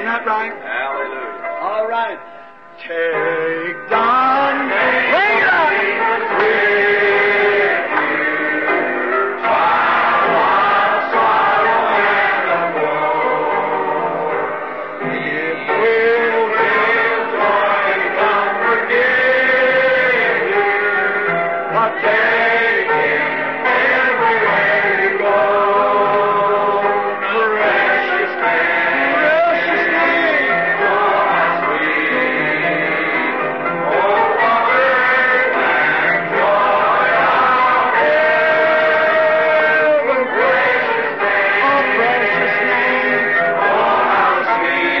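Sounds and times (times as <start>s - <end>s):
congregation singing a hymn: 2.8s - 45.0s.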